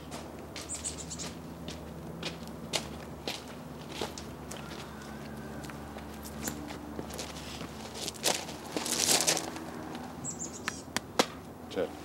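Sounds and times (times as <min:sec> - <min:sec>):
footsteps on stone steps: 0:00.0 - 0:10.0
bird chirp: 0:00.6 - 0:01.4, 0:10.2 - 0:10.9.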